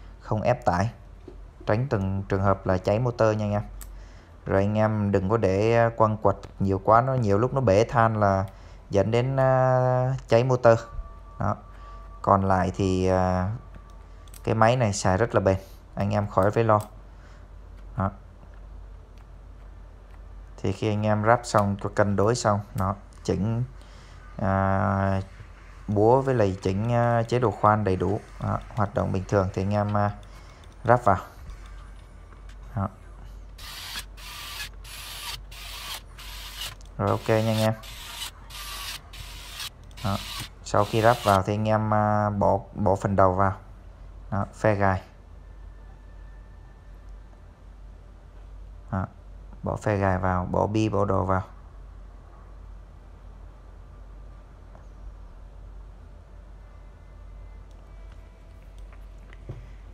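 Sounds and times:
steady low hum: 0:00.0 - 0:59.9
screw being driven rasping: 0:33.6 - 0:41.5.

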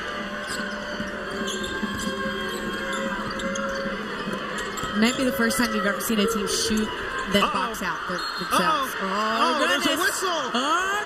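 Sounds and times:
crowd noise: 0:00.0 - 0:11.0
sneaker squeaks on hardwood: 0:00.3 - 0:05.6.

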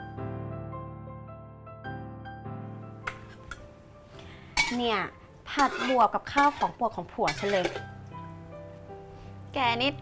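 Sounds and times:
metal spatula clinking on bowl: 0:04.6 - 0:08.0.

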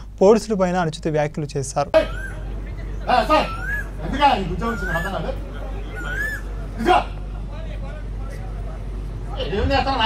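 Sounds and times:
steady low hum: 0:00.0 - 0:10.0
murmur of a gathering: 0:01.9 - 0:10.0.

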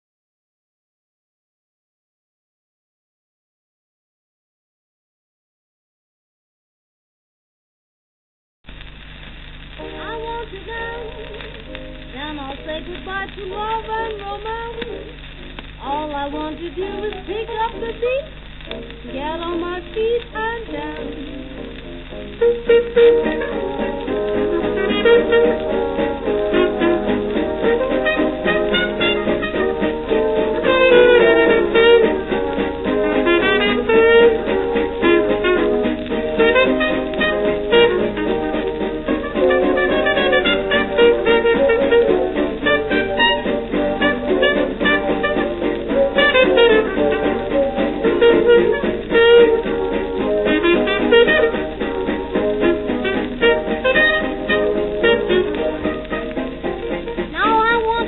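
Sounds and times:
jazz dance orchestra playing: 0:09.7 - 0:58.0
plucked rhythm guitar: 0:09.7 - 0:58.0
brass: 0:09.8 - 0:13.8, 0:20.7 - 0:58.0
saxophones: 0:20.7 - 0:58.0.

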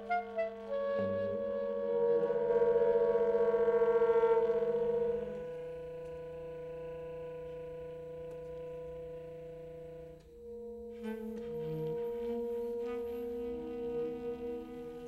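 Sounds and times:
saxophone quartet holding chords: 0:00.0 - 0:15.0.

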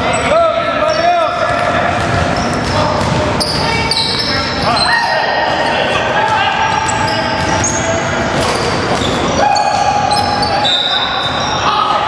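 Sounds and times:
sneakers squeaking on hardwood: 0:00.0 - 0:05.5, 0:06.2 - 0:11.8
players calling out: 0:00.0 - 0:12.0
basketball bouncing: 0:01.4 - 0:04.3, 0:06.1 - 0:10.3.

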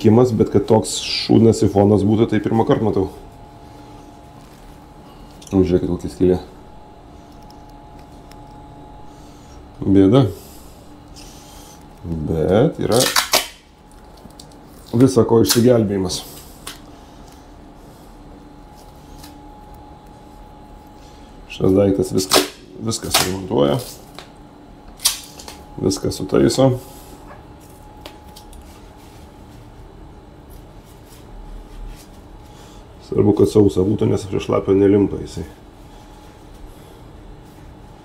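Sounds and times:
faint room hum: 0:00.0 - 0:38.0.

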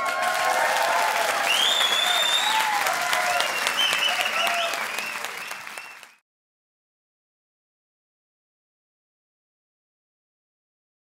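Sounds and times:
high whoops: 0:00.0 - 0:05.8
audience applauding and cheering: 0:00.0 - 0:06.2.

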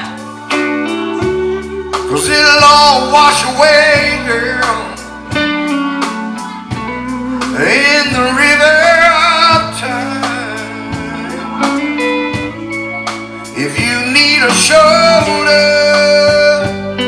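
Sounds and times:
man singing long notes: 0:00.0 - 0:05.4, 0:06.3 - 0:17.0
live band music: 0:00.0 - 0:17.0.

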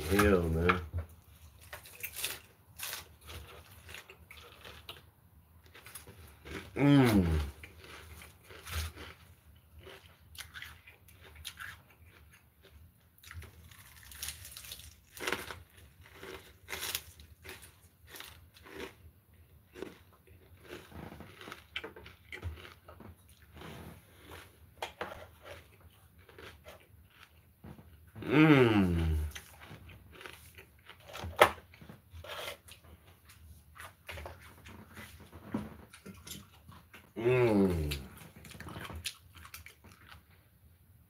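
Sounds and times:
person chewing crunchy salad: 0:00.0 - 0:40.5.

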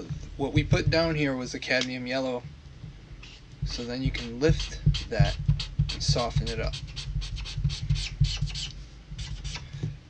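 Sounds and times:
steady low hum: 0:00.0 - 0:10.0
marker nib scratching on paper: 0:03.2 - 0:09.7.

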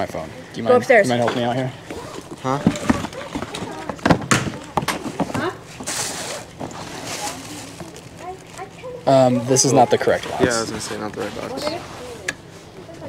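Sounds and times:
cardboard rustling: 0:01.9 - 0:09.0
cardboard boxes knocking and scraping: 0:02.4 - 0:07.0.

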